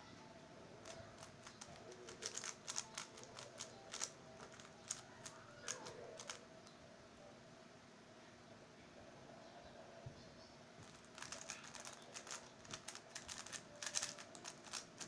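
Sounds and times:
puzzle cube plastic clicks: 0:00.8 - 0:06.4, 0:10.8 - 0:15.0.

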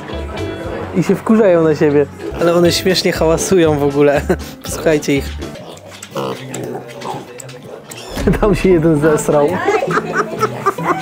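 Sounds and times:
pigs calling: 0:05.5 - 0:08.3, 0:09.6 - 0:11.0.

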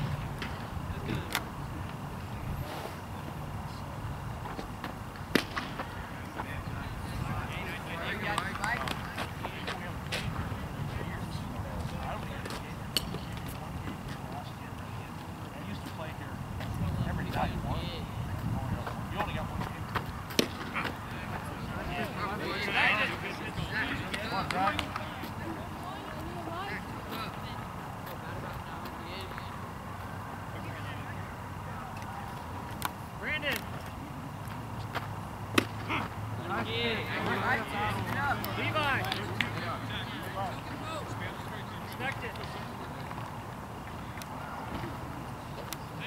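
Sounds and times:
baseball crack: 0:00.0 - 0:02.0, 0:04.4 - 0:17.5, 0:18.4 - 0:27.3, 0:31.8 - 0:46.0
distant chatter of people: 0:00.0 - 0:46.0.

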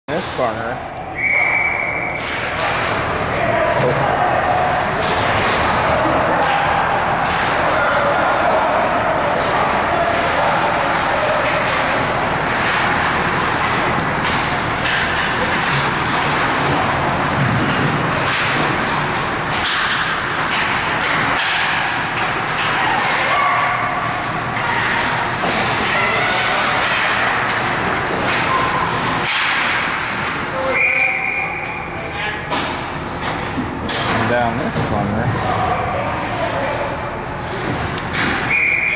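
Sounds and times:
arena noise: 0:00.1 - 0:38.9
spectators' voices and calls: 0:00.1 - 0:38.9
hockey sticks and puck clacks: 0:02.1 - 0:03.0, 0:05.0 - 0:31.8, 0:32.5 - 0:36.7, 0:37.7 - 0:38.9.

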